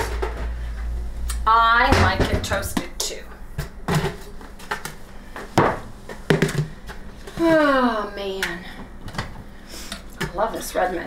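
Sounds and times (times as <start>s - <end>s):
knocks on kitchen counter: 5.6s - 6.7s.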